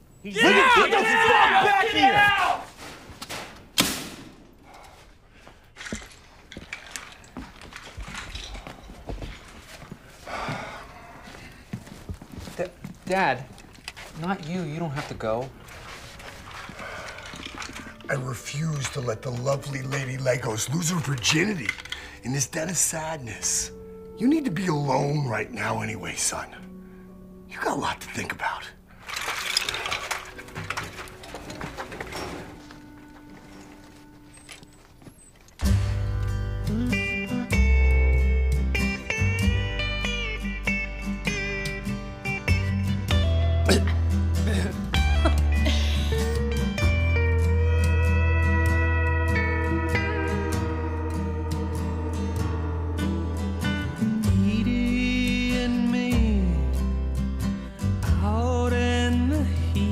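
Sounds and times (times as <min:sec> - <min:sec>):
footfalls: 0:00.9 - 0:13.0
sharp thud: 0:03.3 - 0:04.5
plastic bricks clinking and rattling: 0:17.1 - 0:18.1, 0:29.0 - 0:32.2.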